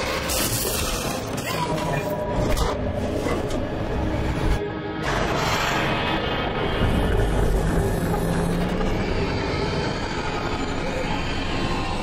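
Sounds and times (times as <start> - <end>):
dense rumbling drone: 2.2 - 12.0.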